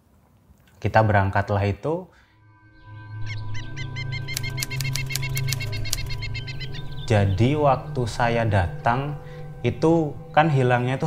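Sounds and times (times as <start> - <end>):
low sustained drone: 2.2 - 11.0
steady high tone: 2.2 - 11.0
bird-like chirps and clicks: 4.2 - 7.1.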